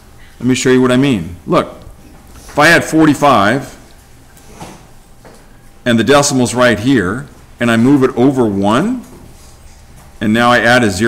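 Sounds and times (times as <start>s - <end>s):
man speaking: 0.4s - 3.9s, 5.8s - 9.2s, 10.2s - 11.0s.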